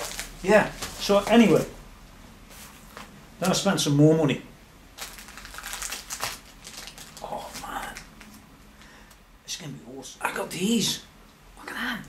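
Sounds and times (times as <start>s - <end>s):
plastic bag crinkling: 0.0s - 1.8s, 5.0s - 8.4s.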